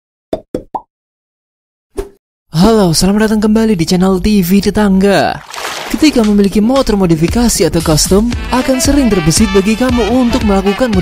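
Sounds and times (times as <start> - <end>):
cartoon plops: 0.3 - 0.9.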